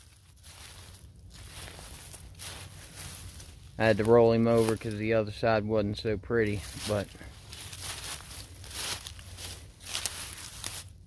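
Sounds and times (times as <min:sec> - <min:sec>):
dry leaves crunching underfoot: 0:00.0 - 0:05.1, 0:06.4 - 0:11.0.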